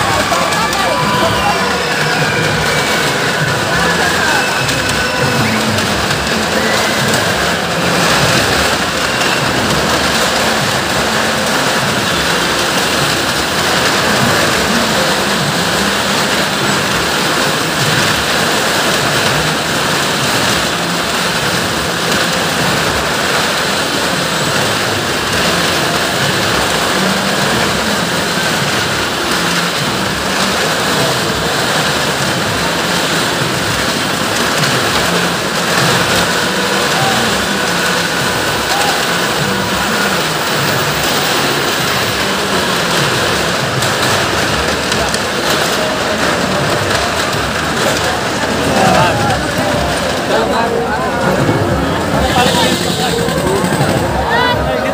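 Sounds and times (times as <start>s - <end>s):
car engines and tyres rushing: 0.0s - 54.9s.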